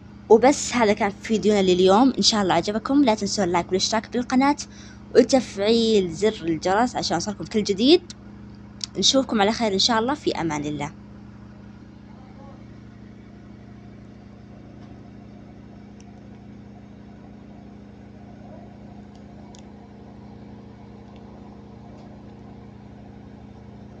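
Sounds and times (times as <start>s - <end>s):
low mechanical hum: 0.0s - 24.0s.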